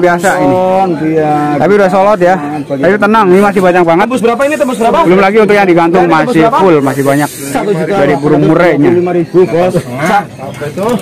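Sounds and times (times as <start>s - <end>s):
men talking over each other: 0.0s - 11.0s.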